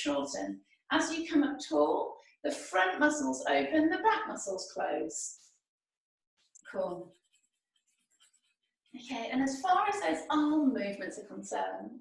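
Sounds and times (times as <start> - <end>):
coloring scratching on paper: 5.3 - 5.7, 6.4 - 10.2.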